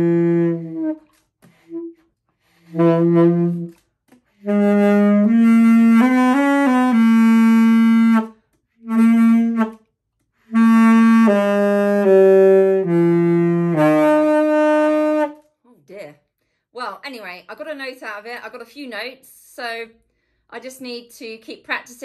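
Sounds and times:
alto saxophone notes: 0:00.0 - 0:09.8, 0:10.4 - 0:15.4.

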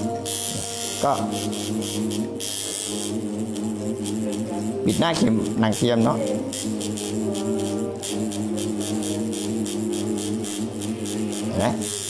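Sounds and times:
tattoo machine buzzing: 0:00.0 - 0:12.0.

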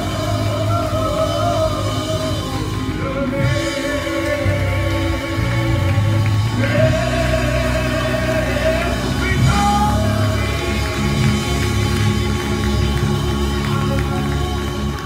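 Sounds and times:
choir singing: 0:00.0 - 0:12.1
held keyboard chords: 0:00.0 - 0:15.0
low bass line: 0:00.0 - 0:15.0.

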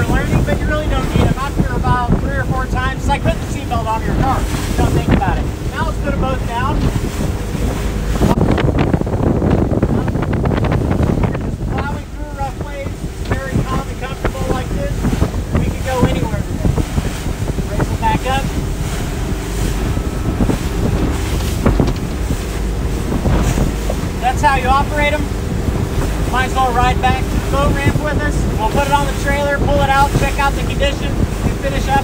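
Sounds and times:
boat engine hum: 0:00.0 - 0:32.0
wind buffeting microphone: 0:00.0 - 0:32.0.

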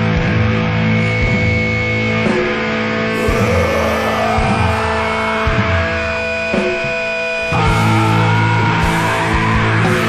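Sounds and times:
hardcore punk band playing: 0:00.0 - 0:10.0
rising guitar squeal: 0:03.1 - 0:06.5, 0:07.5 - 0:10.0.

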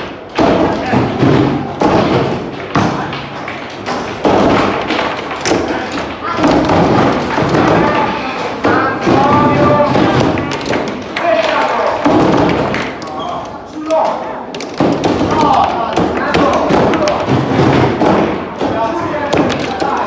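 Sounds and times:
foosball ball knocks and thuds: 0:00.0 - 0:11.2, 0:12.0 - 0:13.0, 0:14.5 - 0:20.0.

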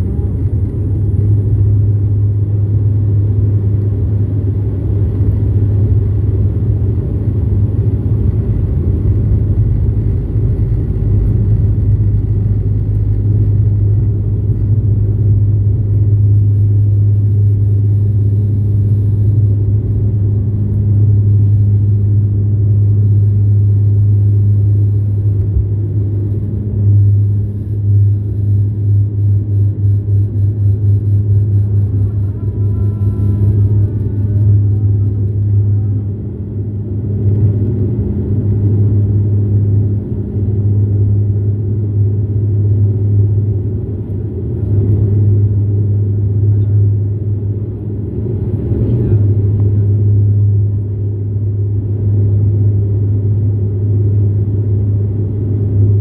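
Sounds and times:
runway rumble from wheels: 0:00.0 - 0:55.8
faint wavering whine: 0:00.0 - 0:56.0
low propeller drone: 0:00.0 - 0:56.0.

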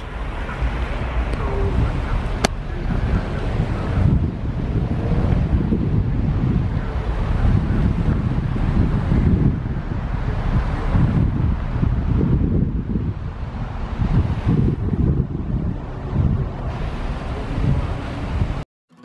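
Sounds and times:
wind buffeting microphone: 0:00.0 - 0:18.6.

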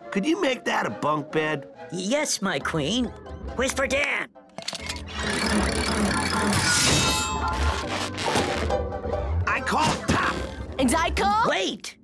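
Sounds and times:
music: 0:00.0 - 0:12.0
cartoon mechanism sound effects: 0:04.6 - 0:08.5.

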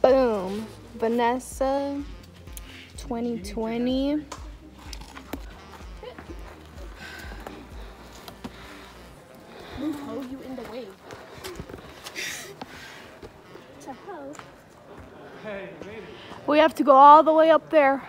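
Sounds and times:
faint indistinct voices: 0:04.4 - 0:18.0.

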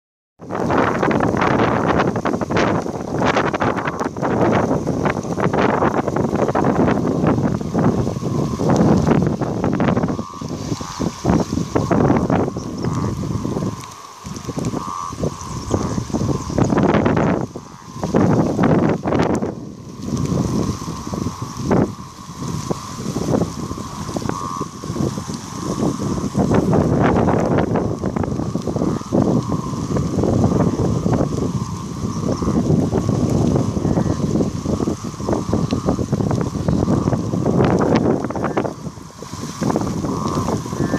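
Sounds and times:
rushing floodwater: 0:00.4 - 0:40.9
wind buffeting microphone: 0:00.4 - 0:40.9.

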